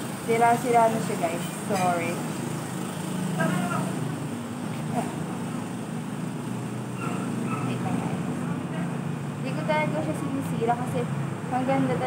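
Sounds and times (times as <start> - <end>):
vehicle engine droning: 0.0 - 12.0.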